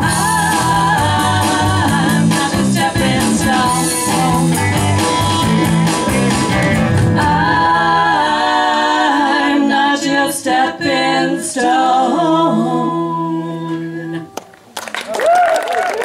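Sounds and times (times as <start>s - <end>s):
voices singing in harmony: 0.0s - 5.5s, 6.8s - 14.4s
guitars and bass: 0.0s - 8.2s.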